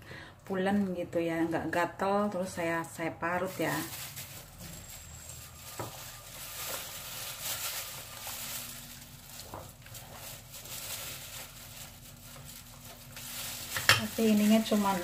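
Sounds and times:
soft rustling: 3.4 - 15.0.

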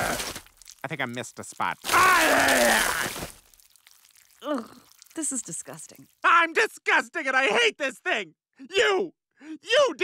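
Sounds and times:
voiced retch: 1.7 - 5.3
cartoon vomiting spew: 1.8 - 3.4, 4.2 - 5.4.

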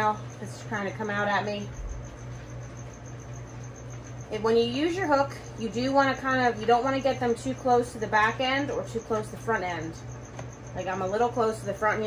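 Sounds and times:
room equipment hum: 0.0 - 12.0.

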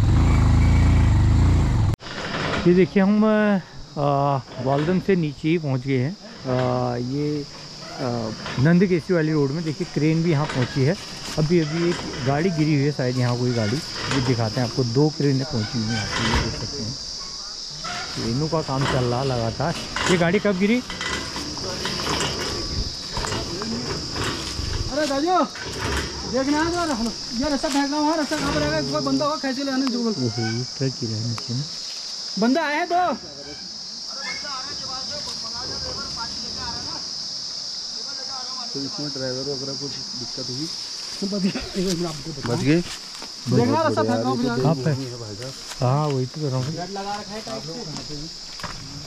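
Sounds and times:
motorcycle engine rumble: 0.0 - 2.5, 18.2 - 29.1
insects buzzing: 0.0 - 49.0
rustling through undergrowth: 6.2 - 30.6, 31.6 - 32.5, 40.0 - 49.0.

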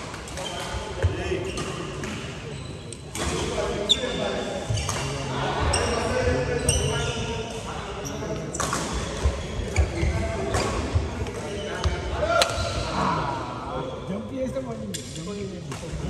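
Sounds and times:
players' voices: 0.2 - 16.0.

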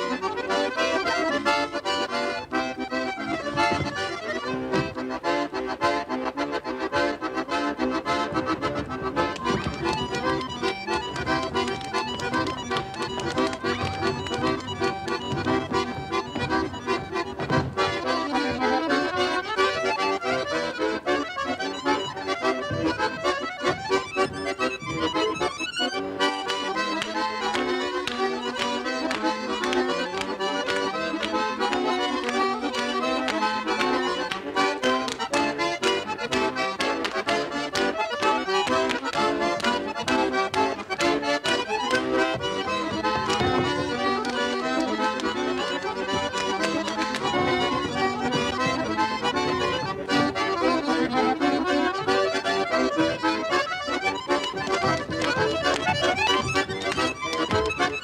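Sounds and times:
accordion folk dance music: 0.0 - 58.0.

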